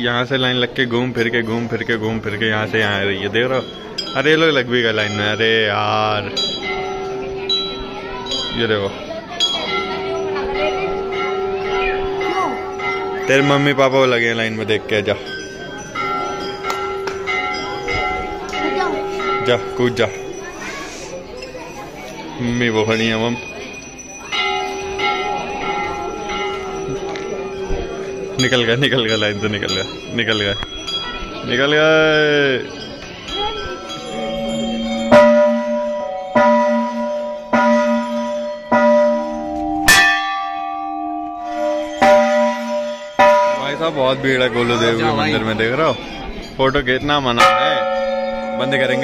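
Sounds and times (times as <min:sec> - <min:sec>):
temple bells ringing: 0:00.0 - 0:49.0
second bell of different pitch: 0:33.3 - 0:43.6.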